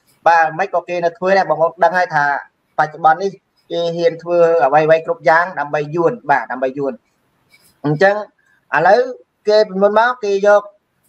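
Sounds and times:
person talking: 0:00.2 - 0:07.0, 0:07.7 - 0:10.7.

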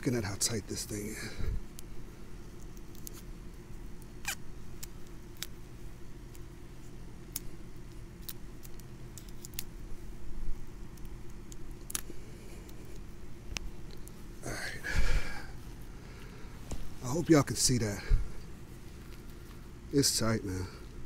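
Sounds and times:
steady low rumble: 0:00.0 - 0:21.0.

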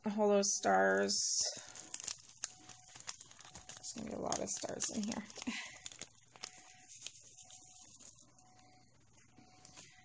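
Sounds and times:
plastic bag clicks and crinkles: 0:00.7 - 0:08.4.

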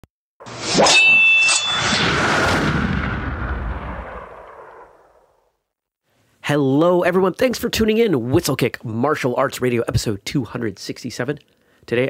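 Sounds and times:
whooshing rush: 0:00.4 - 0:05.4
sharp hits with ringing tone: 0:00.5 - 0:02.3.

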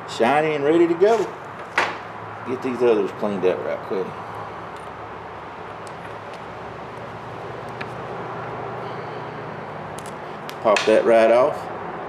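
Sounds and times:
workshop hum: 0:00.0 - 0:12.0.

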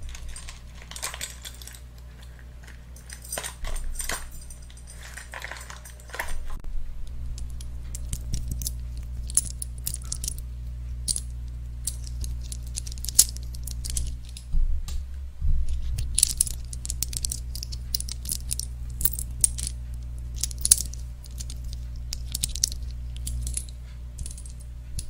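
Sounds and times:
steady low hum: 0:00.0 - 0:25.0
microphone handling thumps: 0:14.5 - 0:16.2.

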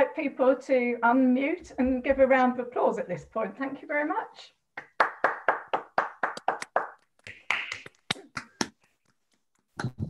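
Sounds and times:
hand clapping: 0:04.8 - 0:10.0.

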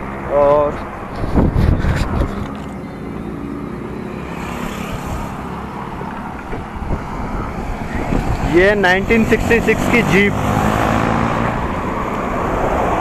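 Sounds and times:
road traffic noise: 0:00.0 - 0:13.0
wind blowing on microphone: 0:00.7 - 0:02.7, 0:06.4 - 0:09.3.

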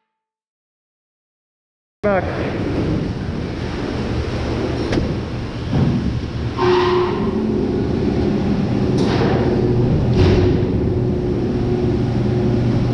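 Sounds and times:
machinery hum: 0:02.0 - 0:12.9.

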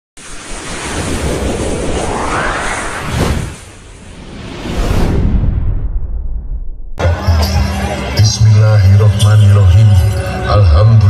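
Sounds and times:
rushing whoosh: 0:00.2 - 0:07.0
deep rumble: 0:00.8 - 0:07.0.

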